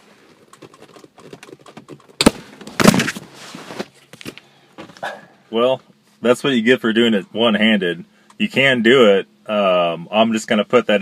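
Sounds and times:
rustling handling noise: 0.0 - 6.3.

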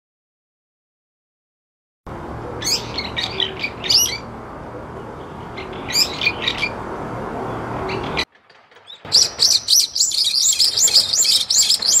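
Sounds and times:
bird chirping rapidly: 2.6 - 4.3, 5.2 - 6.8, 7.9 - 12.0.

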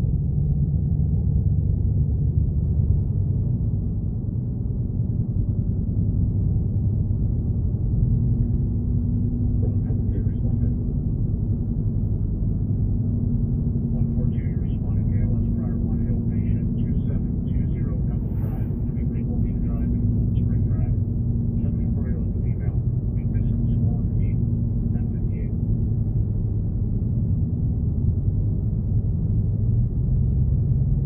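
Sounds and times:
engine and tyre rumble: 0.0 - 31.0
faint muffled voices: 9.6 - 10.8, 14.0 - 21.0, 21.6 - 25.6.

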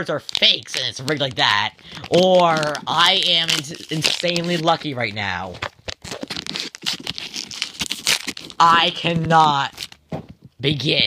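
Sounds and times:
cards and pack crinkling: 0.0 - 10.4.

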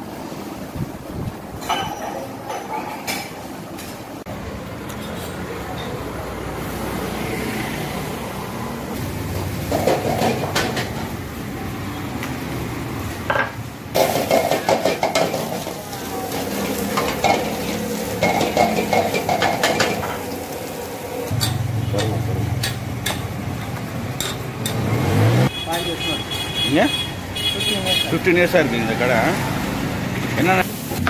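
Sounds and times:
metal utensils clattering on a pan: 1.6 - 4.0, 9.6 - 11.1, 13.3 - 20.3, 21.3 - 24.9
sizzling: 6.3 - 25.5, 26.4 - 31.0.

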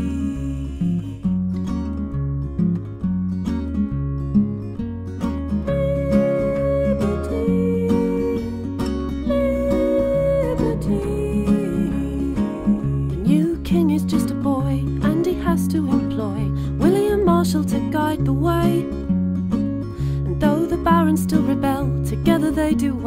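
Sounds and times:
bass guitar line: 0.0 - 22.3
acoustic guitar: 0.0 - 23.0.

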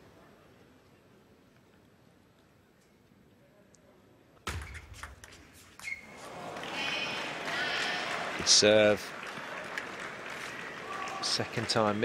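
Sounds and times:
arena crowd noise: 6.0 - 12.0.

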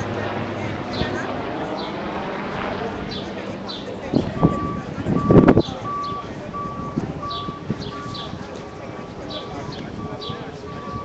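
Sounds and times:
vehicle backup alarm beeping: 4.2 - 11.0.

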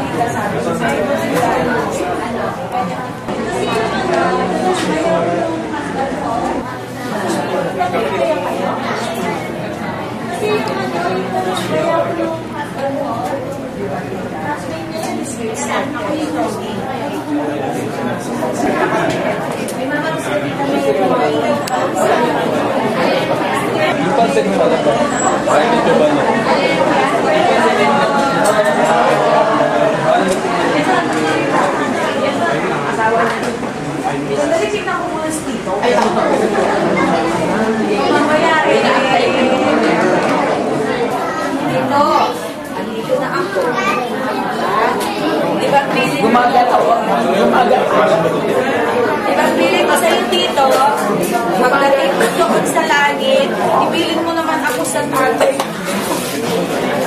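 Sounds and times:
indistinct chatter of voices: 0.0 - 57.0.

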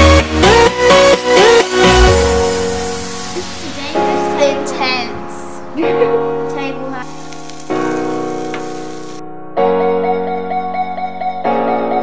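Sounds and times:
keyboard music: 0.0 - 12.0
food sizzling on a hotplate: 0.6 - 5.1, 6.0 - 9.2.

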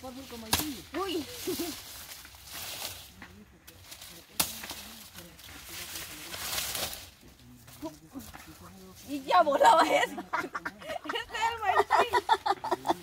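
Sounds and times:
maize leaves rustling: 0.0 - 13.0
sharp crack: 0.4 - 1.0, 4.3 - 5.0.

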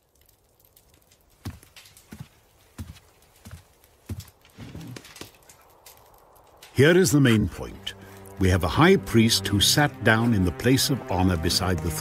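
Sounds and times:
horse hooves clip-clopping: 0.0 - 8.4.

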